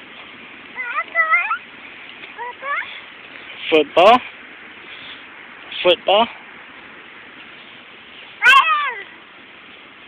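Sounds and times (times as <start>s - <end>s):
child squealing: 0.8s - 1.6s, 2.4s - 3.0s, 8.4s - 9.1s.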